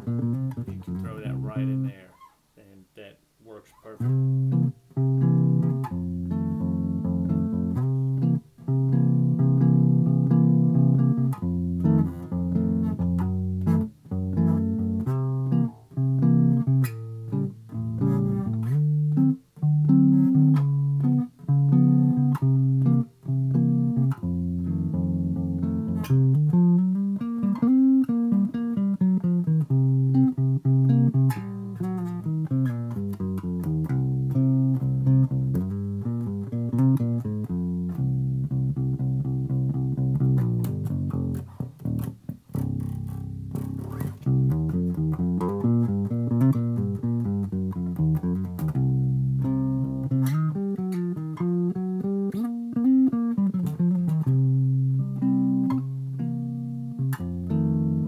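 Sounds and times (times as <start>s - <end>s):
electric bass solo: 0.0s - 2.2s, 4.0s - 58.0s.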